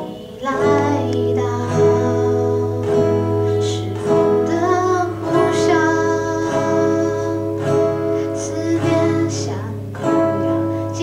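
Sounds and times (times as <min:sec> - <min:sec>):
acoustic guitar: 0:00.0 - 0:11.0
woman singing into a microphone: 0:00.0 - 0:11.0.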